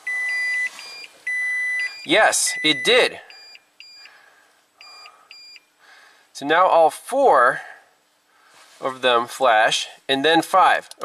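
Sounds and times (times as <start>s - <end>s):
short electronic beeps: 0.0s - 4.2s, 4.8s - 5.7s.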